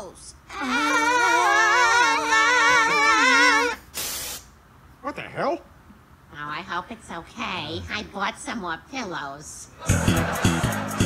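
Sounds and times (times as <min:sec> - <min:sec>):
burst of hiss: 0:03.8 - 0:04.5.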